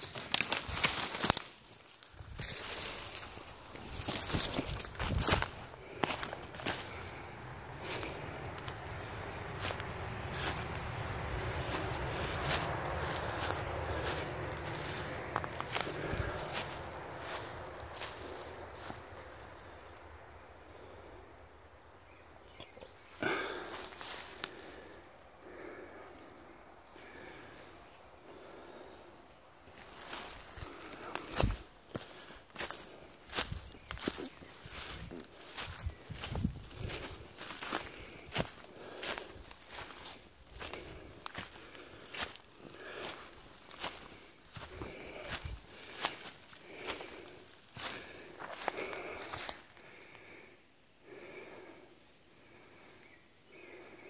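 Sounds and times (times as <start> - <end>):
footsteps through forest undergrowth: 0.0 - 21.0, 22.9 - 50.4.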